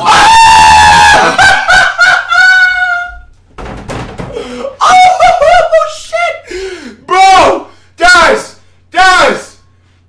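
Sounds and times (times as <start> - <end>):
man screaming excitedly: 0.0 - 3.3, 4.7 - 9.6.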